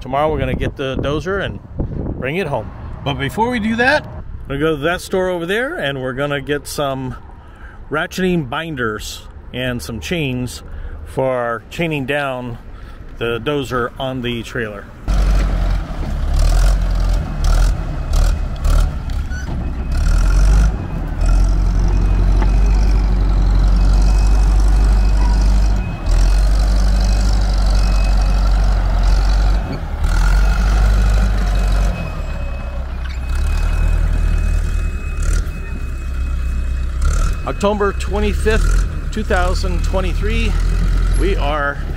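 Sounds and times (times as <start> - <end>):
diesel engine running: 14.9 - 41.9.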